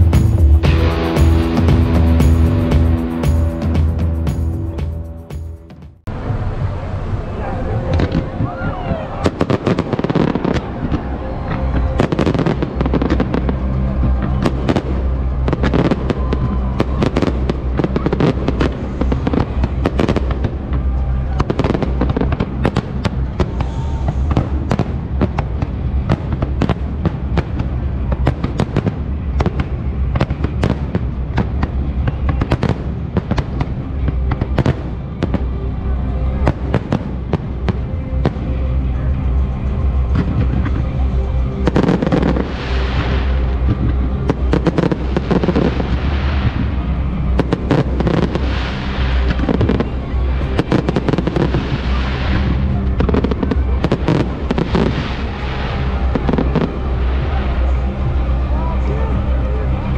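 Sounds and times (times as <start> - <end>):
fireworks banging: 0.0 - 59.9
low hum: 0.0 - 59.9.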